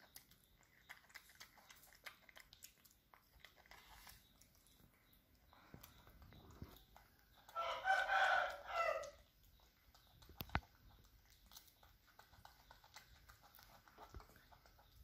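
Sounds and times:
rooster crowing: 7.6 - 9.2.

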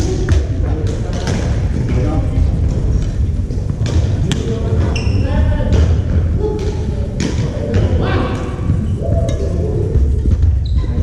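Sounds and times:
voices in a large hall: 0.0 - 11.0.

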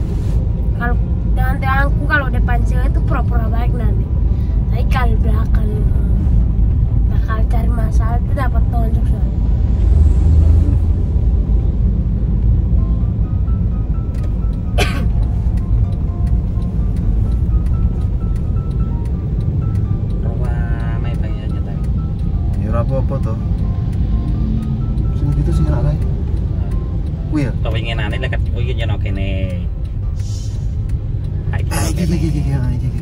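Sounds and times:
car cabin road noise: 0.0 - 33.0
simple melody playing: 11.5 - 30.2.

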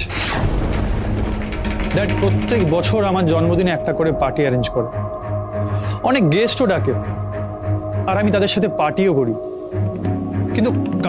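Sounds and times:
short whoosh: 0.0 - 1.1
low rumble: 0.0 - 8.5
background score music: 0.0 - 11.0
fast mechanical ticking: 0.8 - 3.7.

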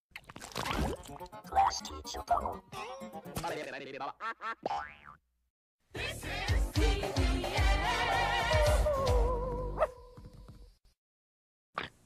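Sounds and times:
springy cartoon boing: 4.6 - 5.2.

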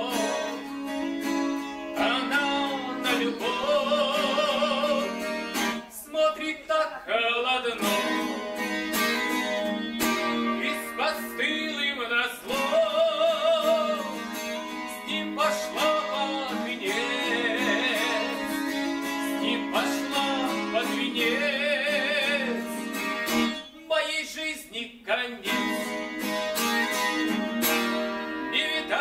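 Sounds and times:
acoustic guitar strumming: 0.0 - 29.0
man singing with vibrato: 0.0 - 29.0.

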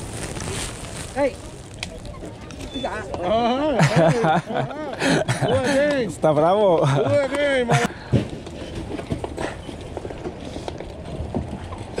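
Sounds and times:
outdoor background hiss: 0.0 - 8.4.

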